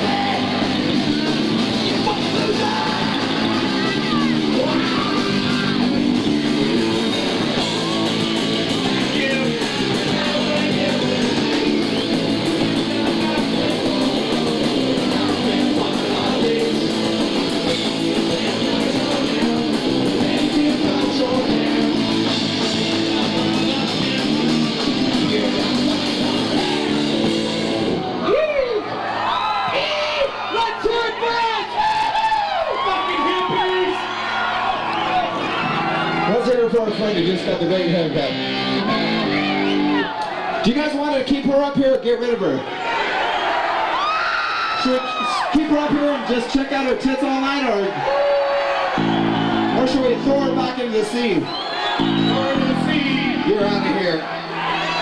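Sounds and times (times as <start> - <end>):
punk band playing live: 0.0 - 28.3, 34.3 - 40.1, 48.8 - 51.2, 52.0 - 55.0
crowd yelling and whooping: 0.0 - 41.2, 42.3 - 55.0.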